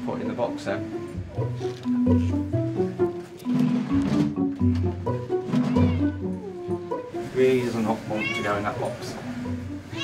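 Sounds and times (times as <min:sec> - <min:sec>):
background music with low notes: 0:00.0 - 0:10.0
cat meowing: 0:05.6 - 0:06.6, 0:08.0 - 0:08.9.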